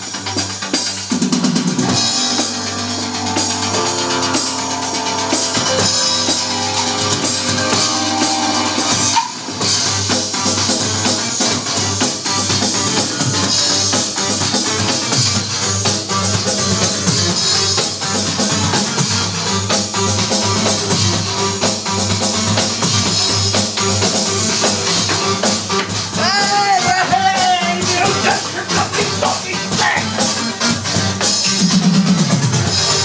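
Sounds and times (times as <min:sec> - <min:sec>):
electronic drum beat: 0:00.0 - 0:33.0
synth backing track: 0:00.0 - 0:33.0.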